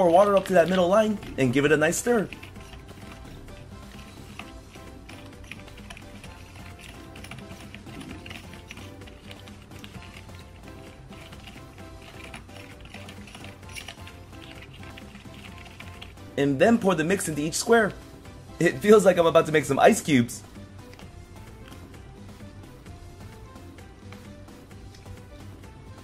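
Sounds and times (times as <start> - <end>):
plastic spoon scraping plastic tray: 0.0 - 16.4
background music: 0.0 - 26.0.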